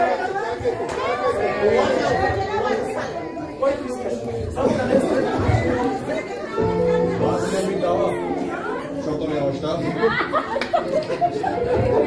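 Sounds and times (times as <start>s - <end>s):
audience chatter and calling out: 0.0s - 12.0s
held musical chord: 6.6s - 9.6s.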